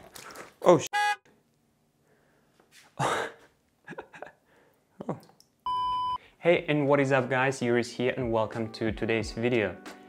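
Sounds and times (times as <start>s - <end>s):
short electronic beep: 5.7s - 6.2s.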